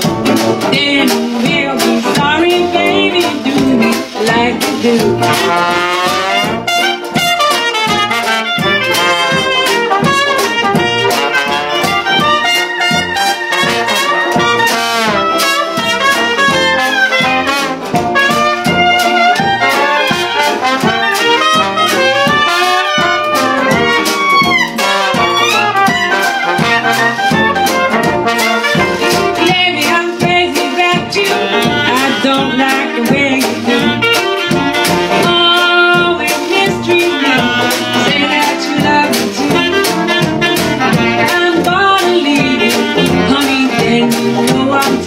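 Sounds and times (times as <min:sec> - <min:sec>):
muted cornet: 0:00.0 - 0:45.0
strummed banjo: 0:00.0 - 0:45.0
trombone: 0:00.0 - 0:45.0.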